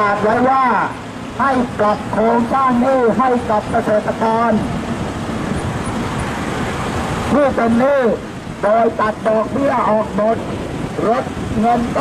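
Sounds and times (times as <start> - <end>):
man's voice: 0.0 - 4.7, 7.3 - 12.0
road traffic rumble: 0.0 - 12.0.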